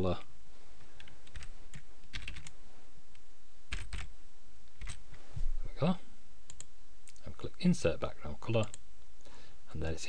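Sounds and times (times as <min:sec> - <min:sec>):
computer keyboard typing: 0:01.0 - 0:02.5, 0:03.7 - 0:04.1, 0:04.8 - 0:05.0.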